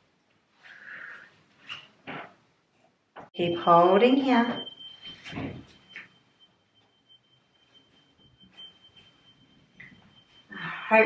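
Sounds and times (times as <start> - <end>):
smoke alarm beeping: 3.4 - 11.0.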